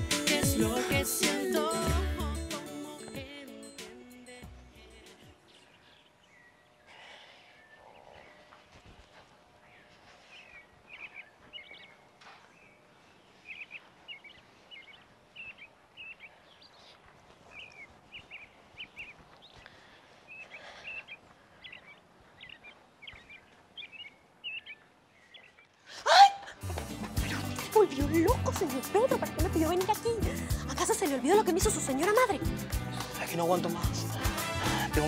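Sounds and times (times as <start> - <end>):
music: 0.0 - 5.5, 26.6 - 35.0
birds chirping: 5.2 - 25.9, 26.7 - 35.0.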